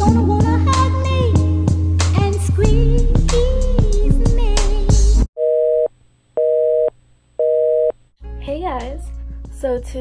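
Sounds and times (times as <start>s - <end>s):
telephone busy signal: 5.4s - 8.0s
background music: 8.2s - 10.0s.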